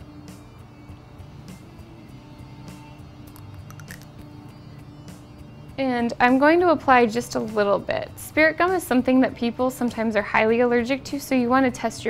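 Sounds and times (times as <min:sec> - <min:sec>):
quiet background music: 0:00.0 - 0:12.0
plastic bottle cap clicks: 0:03.3 - 0:04.2.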